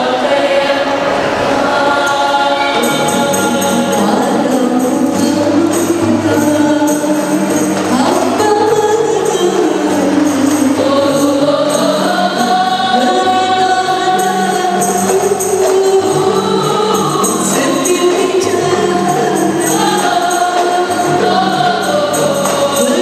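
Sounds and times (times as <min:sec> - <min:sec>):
women singing together: 0:00.0 - 0:23.0
frame drums in steady rhythm: 0:02.2 - 0:23.0.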